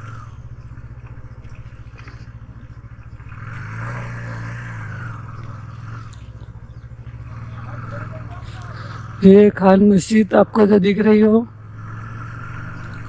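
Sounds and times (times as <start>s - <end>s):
motorcycle engine revving: 0.0s - 13.0s.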